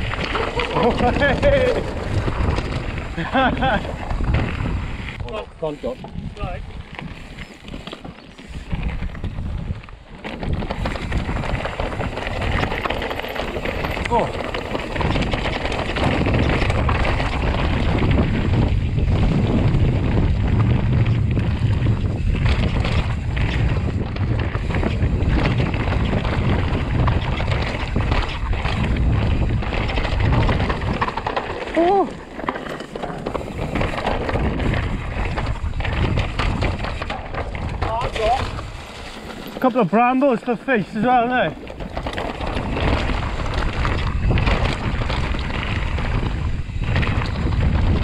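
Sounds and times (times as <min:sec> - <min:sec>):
mountain bike rattling over rocks: 0:00.0 - 0:48.0
wind buffeting microphone: 0:00.0 - 0:48.0.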